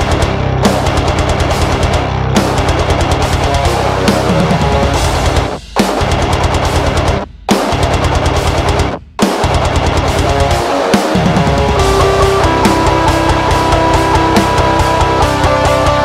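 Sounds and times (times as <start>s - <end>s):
distorted electric guitar riffs: 0.0s - 16.0s.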